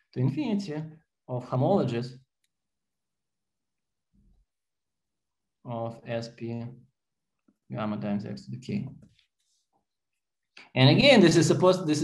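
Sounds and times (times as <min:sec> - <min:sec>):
man speaking: 0:00.0 - 0:02.2, 0:05.7 - 0:06.8, 0:07.7 - 0:09.0, 0:10.6 - 0:12.0.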